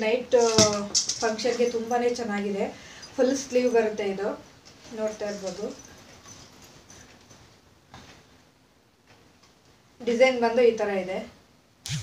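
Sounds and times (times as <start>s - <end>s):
fabric rustling: 3.2s - 8.5s.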